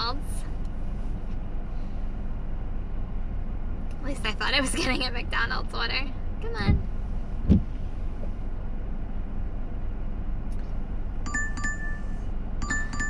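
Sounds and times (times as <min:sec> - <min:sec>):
car cabin hum: 0:00.0 - 0:13.0
short low thump: 0:06.6 - 0:08.4
phone double ping alert: 0:11.3 - 0:13.0.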